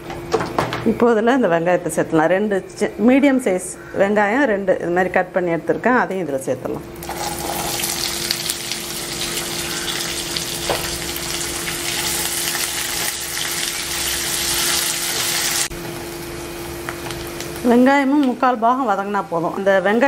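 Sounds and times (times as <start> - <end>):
onions sizzling in hot oil: 7.0 - 19.9.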